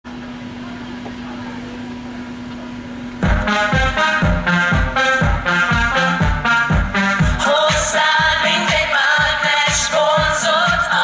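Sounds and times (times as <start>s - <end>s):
background hiss and hum: 0.1s - 11.0s
constant low tone: 0.2s - 11.0s.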